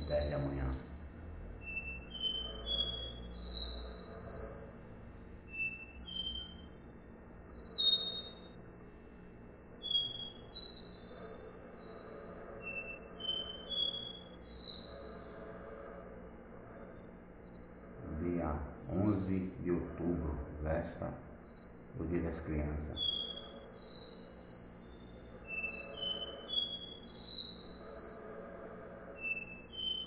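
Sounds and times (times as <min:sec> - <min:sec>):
bird whistling rising notes: 0:00.0 - 0:16.0, 0:18.1 - 0:30.0.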